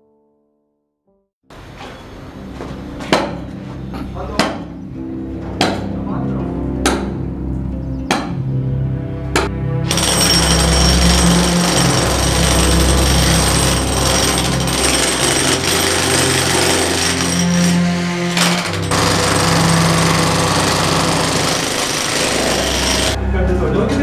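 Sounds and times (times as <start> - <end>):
jackhammer pounding concrete: 9.9 - 23.2.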